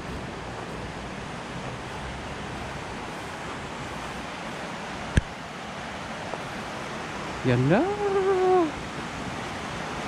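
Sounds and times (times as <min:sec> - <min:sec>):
river flowing over stones: 0:00.0 - 0:10.0
person holding a voiced note: 0:07.5 - 0:08.8.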